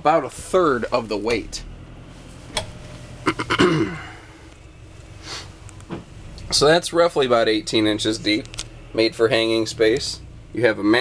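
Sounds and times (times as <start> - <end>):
man clearing his throat: 3.2 - 4.2.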